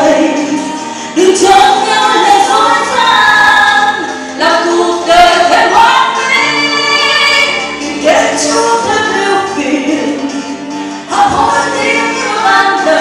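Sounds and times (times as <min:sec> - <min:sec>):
musical accompaniment: 0:00.0 - 0:13.0
woman singing into microphone: 0:00.0 - 0:13.0.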